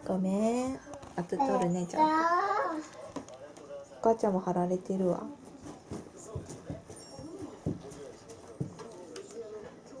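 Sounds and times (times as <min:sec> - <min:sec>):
dog claws tapping on floor: 0:05.5 - 0:09.8.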